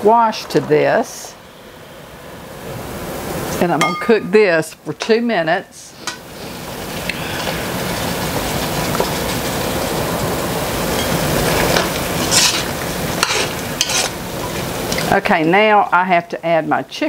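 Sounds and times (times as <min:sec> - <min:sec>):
squash sizzling in butter: 0:06.0 - 0:15.6
spoon scraping pot: 0:11.0 - 0:14.2.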